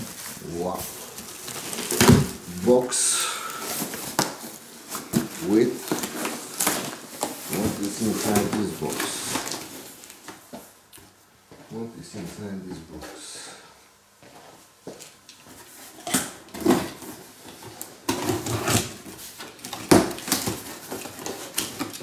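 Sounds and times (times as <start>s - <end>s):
packing material rustling: 0.0s - 10.7s, 15.5s - 22.0s
cardboard boxes handled: 3.6s - 10.7s.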